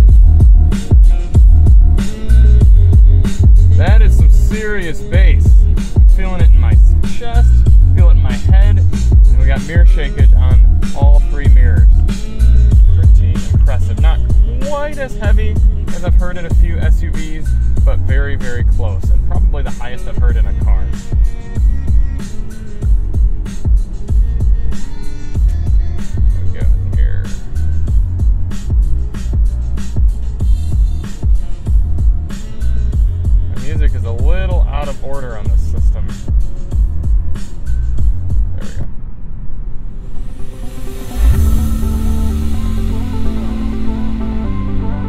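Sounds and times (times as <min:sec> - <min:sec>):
bass-heavy music with vocals: 0:00.0 - 0:38.9, 0:41.0 - 0:45.0.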